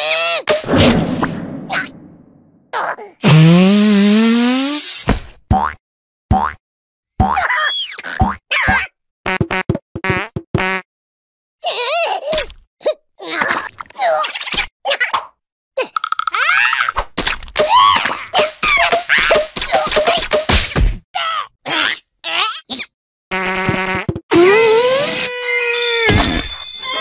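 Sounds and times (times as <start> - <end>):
cartoon character grunts and squeals: 0.0 - 0.5, 2.8 - 3.3, 7.3 - 8.9, 11.6 - 15.0, 15.8 - 17.0, 21.2 - 22.9.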